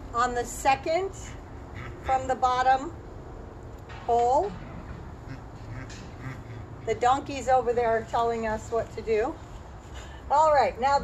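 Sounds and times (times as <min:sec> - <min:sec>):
donkeys braying: 0:01.6 - 0:02.6, 0:04.5 - 0:07.4.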